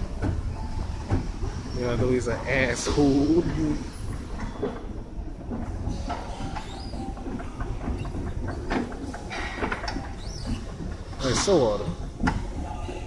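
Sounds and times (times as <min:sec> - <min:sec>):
escalator steps clacking: 0:00.0 - 0:13.0.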